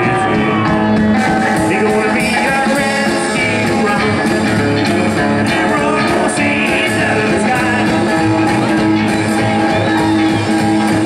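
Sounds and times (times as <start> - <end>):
man singing: 0.0 - 9.4
strummed guitar: 0.0 - 11.0
upright bass: 0.0 - 11.0.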